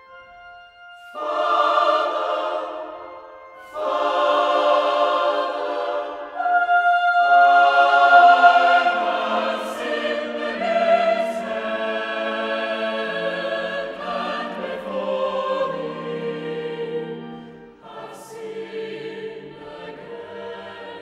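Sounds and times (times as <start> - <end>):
choir singing sustained chords: 0.0 - 21.0.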